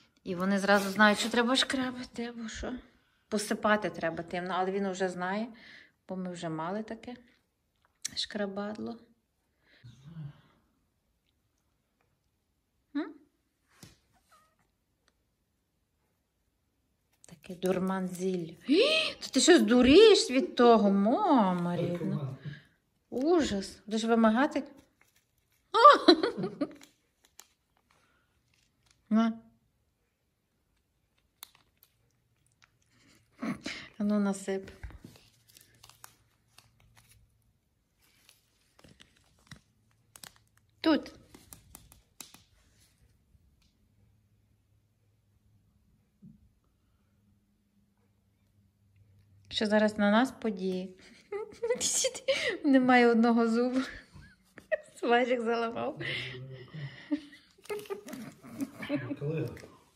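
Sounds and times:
plastic crinkling: 24.6 - 25.8, 26.4 - 29.1, 30.7 - 32.8, 34.7 - 42.9, 57.4 - 58.6.

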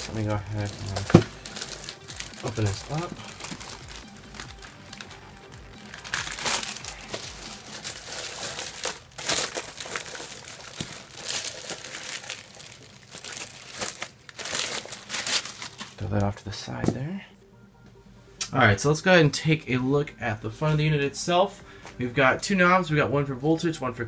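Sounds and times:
plastic wrapping crinkling: 0.0 - 16.4.

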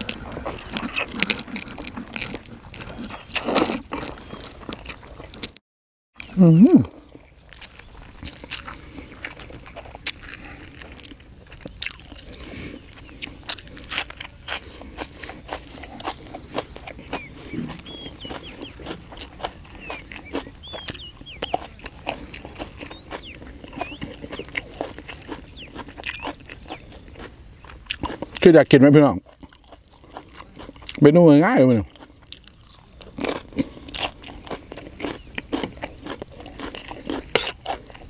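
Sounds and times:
person chewing crunchy food: 0.0 - 5.6, 6.2 - 38.0.

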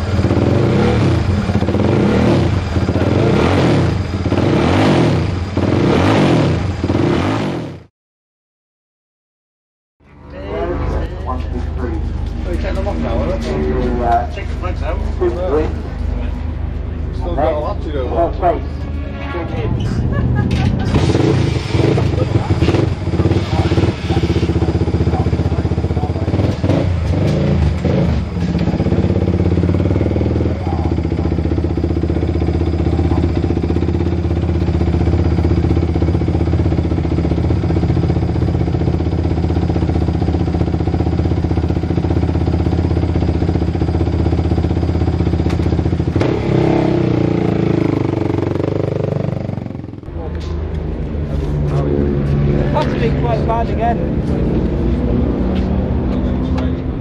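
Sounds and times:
motorcycle engine running: 0.0 - 7.9, 10.2 - 19.2, 20.1 - 57.0.

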